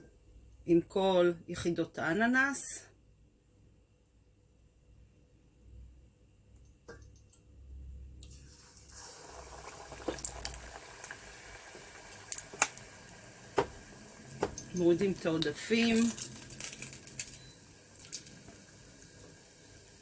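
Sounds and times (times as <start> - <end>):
oil sizzling with pops: 8.2 - 20.0.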